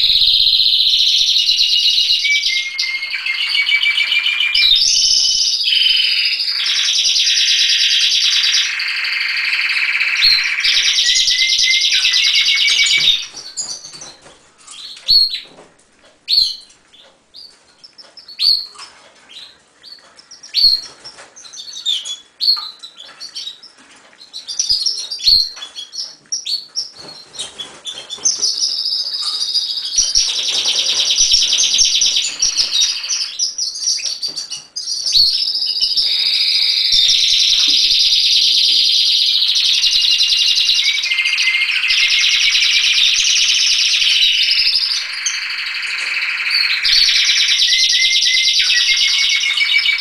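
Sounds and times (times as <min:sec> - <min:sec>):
canaries singing: 0:00.0 - 0:50.0.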